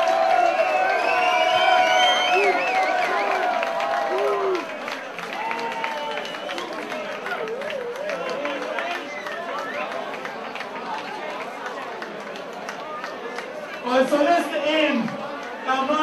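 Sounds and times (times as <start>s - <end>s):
crowd chattering and calling out: 0.0s - 16.0s.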